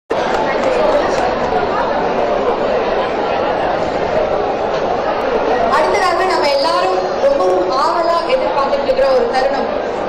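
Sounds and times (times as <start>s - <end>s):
background chatter: 0.1s - 10.0s.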